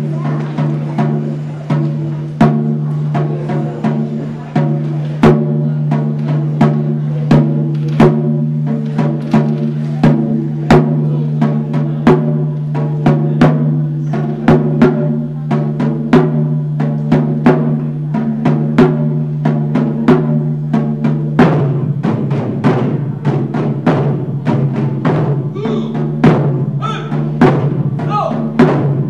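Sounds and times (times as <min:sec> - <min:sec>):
taiko drums struck with sticks: 0:00.0 - 0:29.0.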